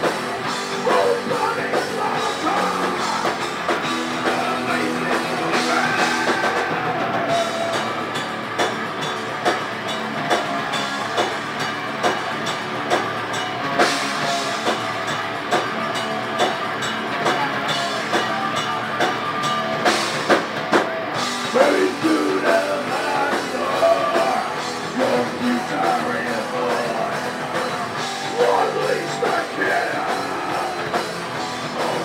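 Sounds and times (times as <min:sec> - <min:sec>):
distorted electric guitars: 0:00.0 - 0:32.0.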